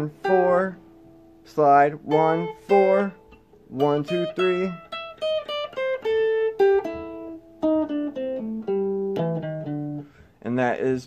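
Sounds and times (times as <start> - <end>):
electric guitar plucked notes: 0.0 - 10.3.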